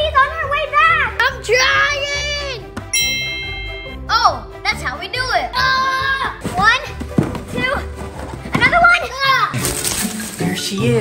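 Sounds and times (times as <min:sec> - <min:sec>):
children calling and exclaiming: 0:00.0 - 0:02.8, 0:03.9 - 0:09.7
background music: 0:00.0 - 0:11.0.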